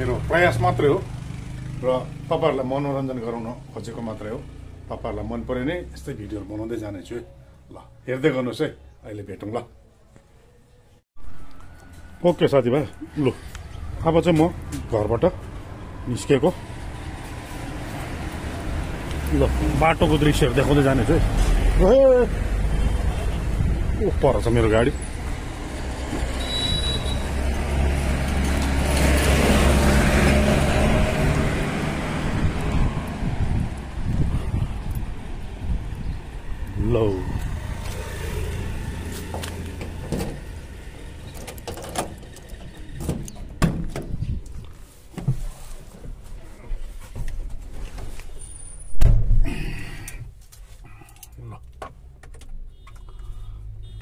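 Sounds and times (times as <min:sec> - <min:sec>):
vehicle engine passing by: 0:00.0 - 0:06.7, 0:11.4 - 0:43.1
low traffic hum: 0:00.0 - 0:54.0.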